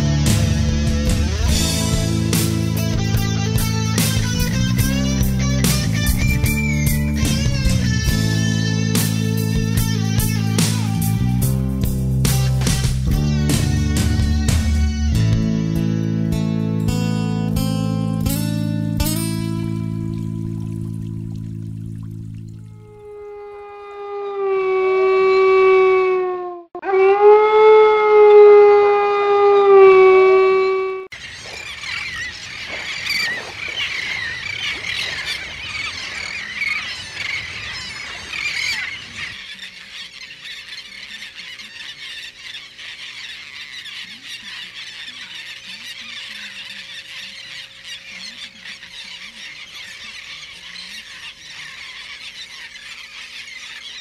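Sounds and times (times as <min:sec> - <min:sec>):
wolf howling: 0:22.7 - 0:31.1.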